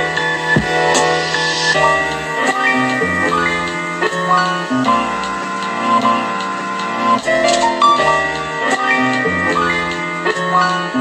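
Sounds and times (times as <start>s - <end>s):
held chord music: 0.0s - 9.7s.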